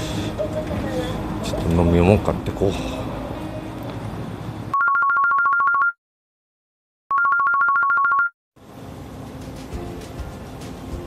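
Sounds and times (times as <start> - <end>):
electronic telephone ring: 4.7 - 6.0, 7.1 - 8.3.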